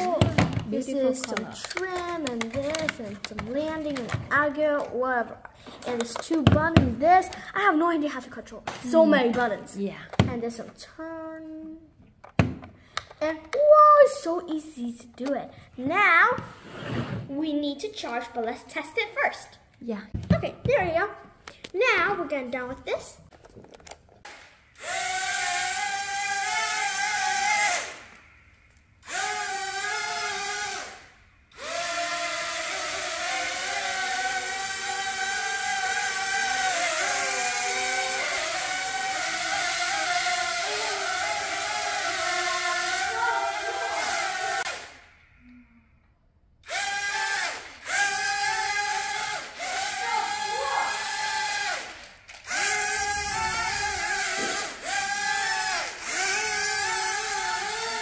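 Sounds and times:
small electric motors whining: 0.0 - 4.2, 24.7 - 45.5, 46.6 - 58.0.

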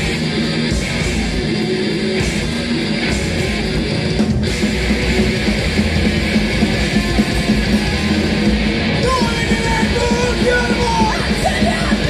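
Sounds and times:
bass guitar: 0.0 - 12.0
drum kit: 0.0 - 12.0
electric guitars: 0.0 - 12.0
person singing: 9.0 - 12.0.

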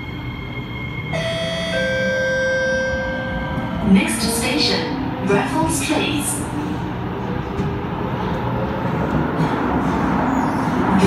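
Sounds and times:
metro train rumbling: 0.0 - 11.0.

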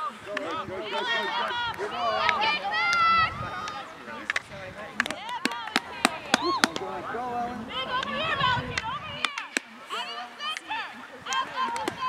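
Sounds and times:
hockey sticks clacking on ball: 3.7 - 6.9, 8.7 - 9.7.

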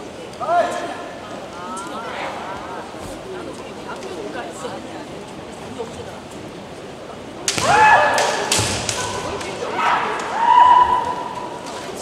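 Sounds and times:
bamboo swords striking: 7.5 - 9.5.

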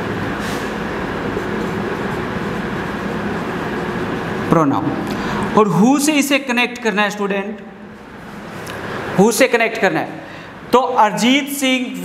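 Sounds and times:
mechanical whir with low hum: 0.0 - 5.8
marker writing on a whiteboard: 1.2 - 4.4.

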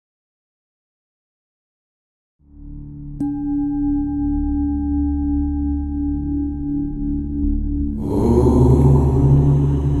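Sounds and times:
low drone: 2.4 - 10.0
singing bowl ringing: 3.2 - 8.0.

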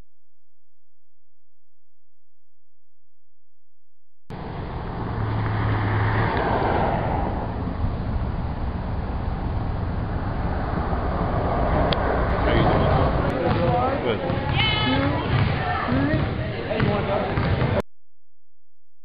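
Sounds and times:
cars going by: 4.3 - 17.8.

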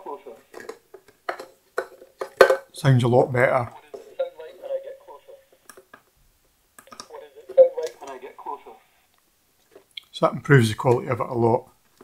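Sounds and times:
tinny recorded voice from small speaker: 0.0 - 6.0, 6.8 - 9.1, 10.0 - 11.8.

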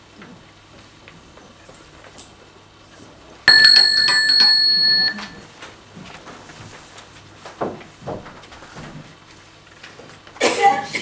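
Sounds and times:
electric doorbell ringing: 3.5 - 5.4.

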